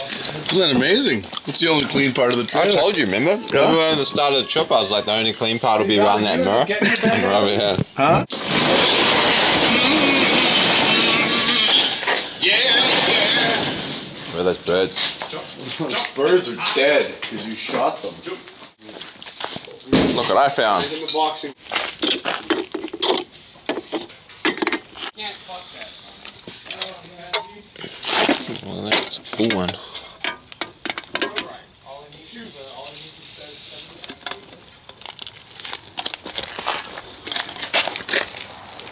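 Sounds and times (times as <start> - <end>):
indistinct voices: 0.0 - 18.5.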